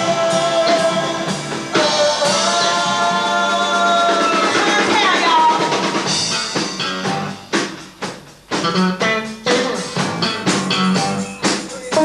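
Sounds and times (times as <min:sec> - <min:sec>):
funk band sustained chord: 0:00.0 - 0:12.0.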